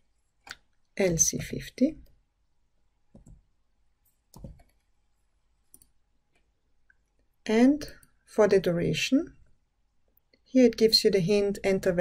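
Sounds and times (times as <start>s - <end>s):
faint computer mouse clicks: 5.7s - 7.0s.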